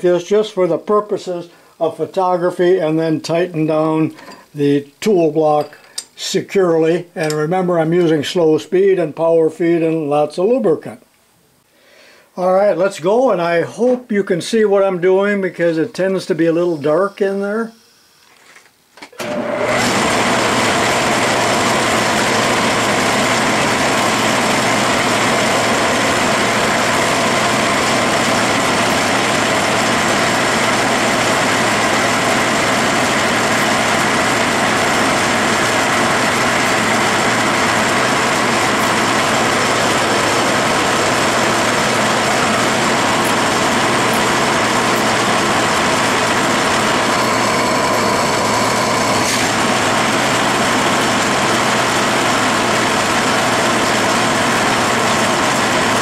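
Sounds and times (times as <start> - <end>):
metal lathe whirring: 19.2 - 56.0.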